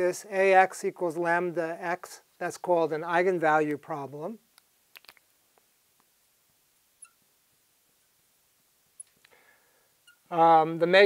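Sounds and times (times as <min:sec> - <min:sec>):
marker squeaking on glass: 0:07.0 - 0:07.3, 0:10.0 - 0:10.3.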